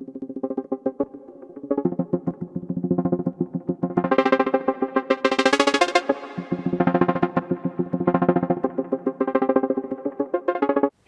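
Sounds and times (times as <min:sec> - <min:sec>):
synthesizer playing plucky notes: 0:00.0 - 0:10.9.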